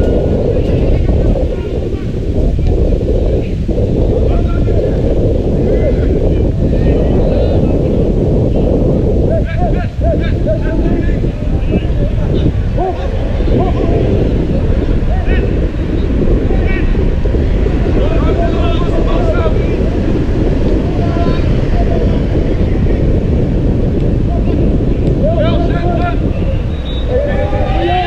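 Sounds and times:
wind buffeting microphone: 0.0 - 28.0.

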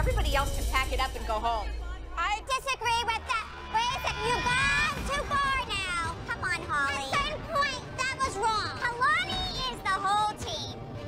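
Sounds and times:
women shouting angrily: 2.7 - 5.7.

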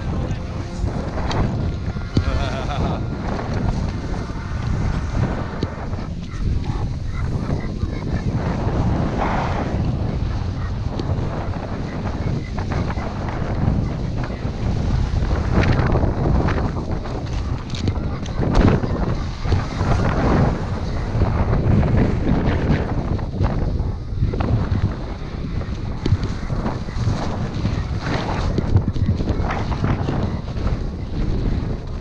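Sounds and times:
skis scraping over snow: 0.0 - 32.0
wind buffeting microphone: 0.0 - 32.0.

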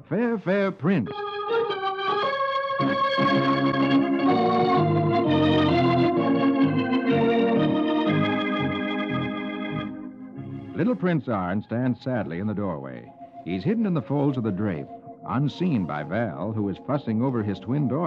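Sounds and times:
romantic organ music: 0.0 - 18.0.

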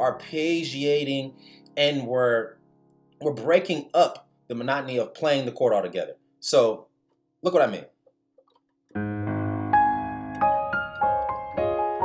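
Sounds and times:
piano arpeggiated chord: 8.9 - 12.0.

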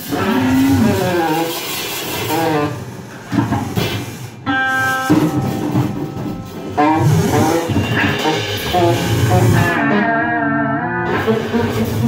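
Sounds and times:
saxophone: 0.0 - 3.5, 4.4 - 12.0
drums: 0.0 - 12.0
electric guitar: 0.0 - 12.0.

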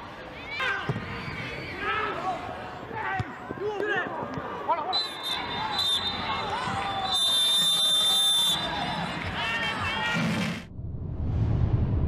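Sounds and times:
players shouting: 0.4 - 10.4
referee's whistle blasts: 4.9 - 8.9.

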